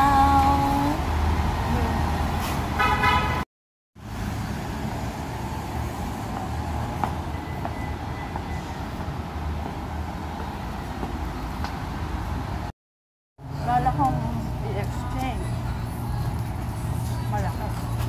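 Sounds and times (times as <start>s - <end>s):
city traffic rumble: 0.0s - 12.8s, 13.4s - 18.0s.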